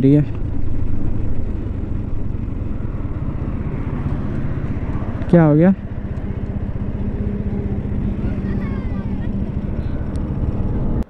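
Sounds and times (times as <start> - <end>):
motorcycle engine rumbling: 0.0 - 11.0
wind rushing over microphone: 0.0 - 11.0.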